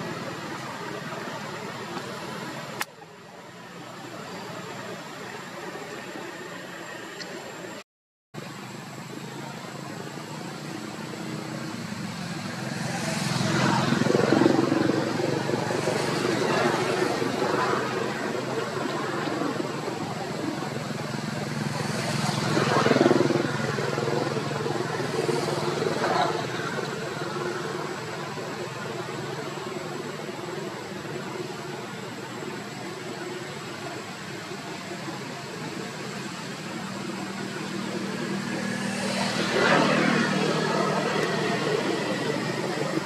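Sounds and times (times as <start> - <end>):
traffic passing: 0.0 - 7.8, 8.4 - 43.0.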